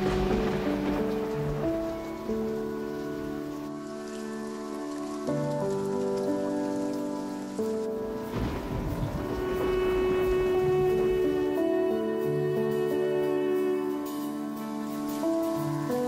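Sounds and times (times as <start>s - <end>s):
ambient synth music: 0.0s - 16.0s
rain-like hiss with crackle: 0.0s - 16.0s.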